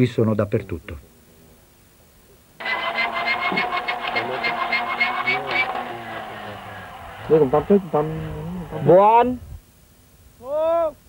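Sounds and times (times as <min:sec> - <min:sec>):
steady whine: 0:02.6 - 0:10.0
radio static: 0:02.7 - 0:09.2.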